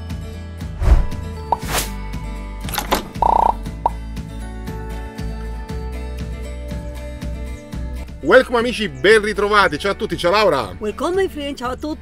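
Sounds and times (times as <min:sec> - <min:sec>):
quick rising blip: 0:00.8 - 0:02.0
whoosh: 0:00.8 - 0:02.0.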